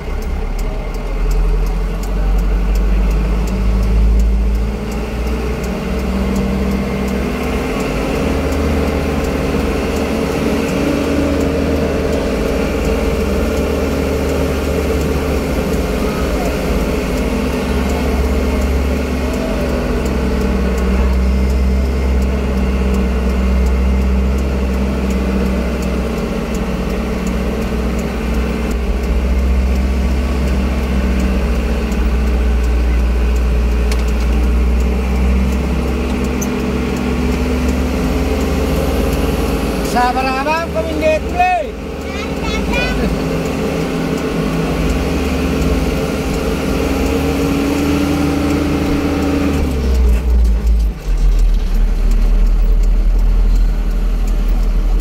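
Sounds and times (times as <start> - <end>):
road noise: 0.0 - 55.0
vehicle engine running: 0.0 - 55.0.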